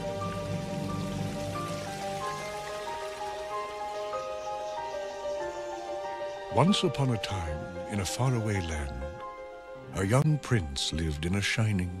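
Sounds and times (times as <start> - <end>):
slow orchestral music: 0.0 - 12.0.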